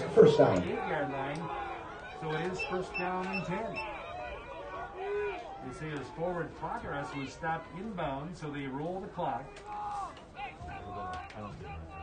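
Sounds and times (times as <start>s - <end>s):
distant voices shouting: 0.0s - 12.0s.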